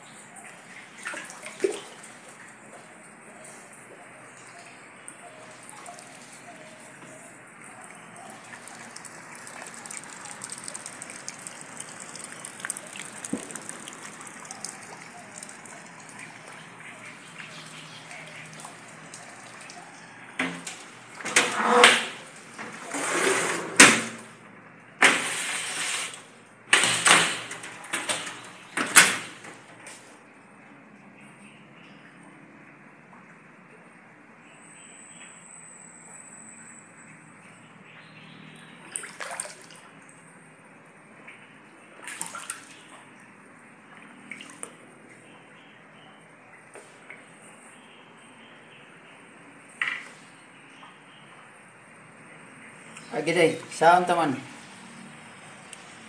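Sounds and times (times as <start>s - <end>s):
water drips: 0.0s - 22.6s, 36.1s - 54.4s
water pattering and trickling: 0.0s - 23.5s, 24.2s - 35.4s, 36.0s - 56.0s
floodwater rushing: 0.6s - 2.8s, 7.7s - 24.3s, 25.0s - 29.6s, 38.9s - 39.8s.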